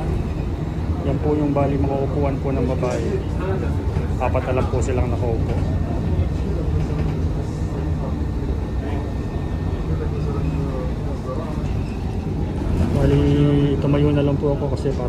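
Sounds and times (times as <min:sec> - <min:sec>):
bus engine rumble and road noise: 0:00.0 - 0:15.0.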